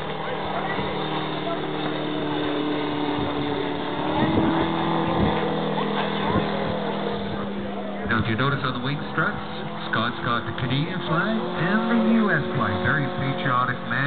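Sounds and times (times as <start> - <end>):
model plane engine droning: 0.0 - 14.0.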